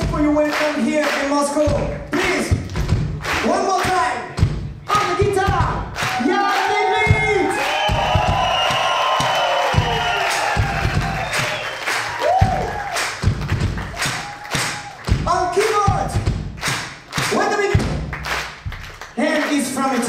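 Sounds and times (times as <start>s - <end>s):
live band bass and drum hits: 0.0s - 6.4s, 7.0s - 19.8s.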